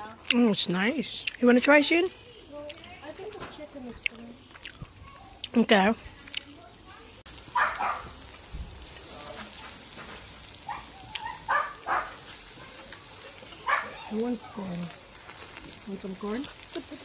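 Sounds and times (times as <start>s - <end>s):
meat sizzling on a charcoal grill: 0.0s - 17.0s.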